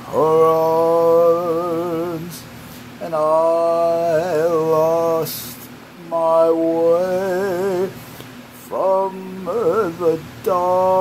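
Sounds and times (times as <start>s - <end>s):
man singing unaccompanied: 0.0s - 8.0s, 8.6s - 11.0s.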